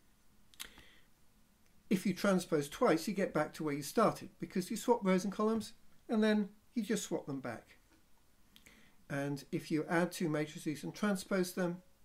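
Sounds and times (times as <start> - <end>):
man's voice: 1.9 - 7.8, 9.1 - 11.8.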